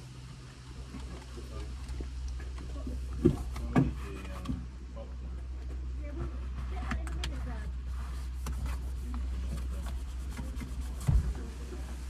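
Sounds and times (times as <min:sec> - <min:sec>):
low hum in car cabin: 0:00.0 - 0:12.0.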